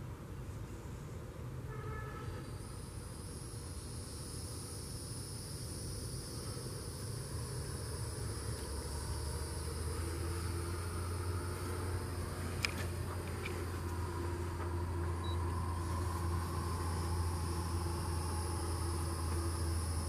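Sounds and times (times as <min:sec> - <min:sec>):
high insect drone: 0:00.8 - 0:20.0
low machine hum: 0:02.0 - 0:20.0.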